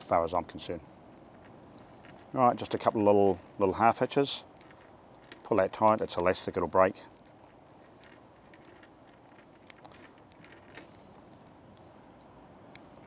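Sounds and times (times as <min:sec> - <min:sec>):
hands handling bait: 0:01.1 - 0:13.0.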